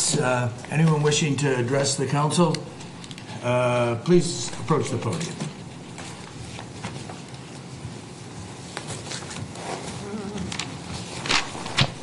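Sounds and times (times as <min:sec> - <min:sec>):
footsteps: 0:04.4 - 0:12.0.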